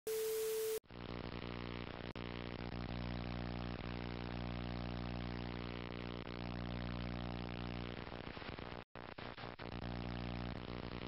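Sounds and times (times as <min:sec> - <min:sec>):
television static hiss: 0:00.1 - 0:11.0
faint crackly hiss: 0:07.7 - 0:11.0.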